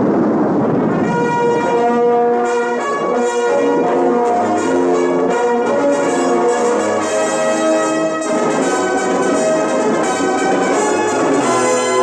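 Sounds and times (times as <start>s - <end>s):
brass-led orchestral music: 0.9s - 12.0s.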